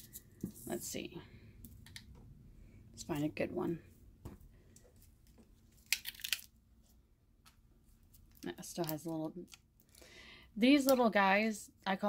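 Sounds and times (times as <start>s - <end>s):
plastic wrapper rustling: 5.6s - 6.6s.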